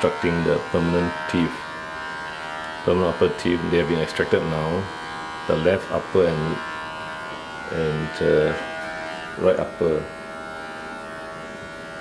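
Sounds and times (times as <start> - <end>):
steady electric hum: 0.0 - 12.0.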